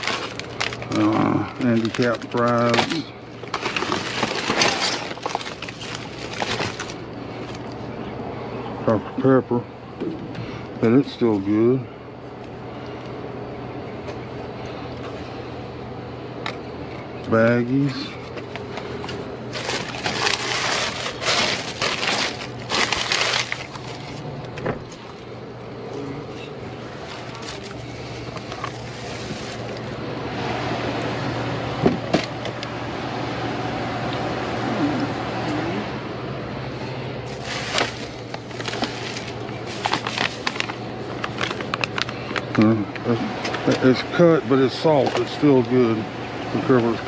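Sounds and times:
plastic bags crinkling: 0.0 - 7.7, 18.6 - 24.3, 26.9 - 30.0, 37.2 - 42.6
steady low hum: 0.0 - 47.0.

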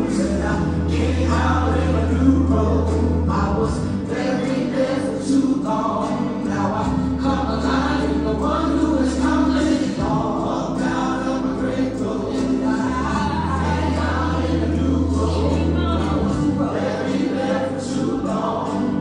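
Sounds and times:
choir singing gospel: 0.0 - 19.0
long held bass notes: 0.0 - 19.0.

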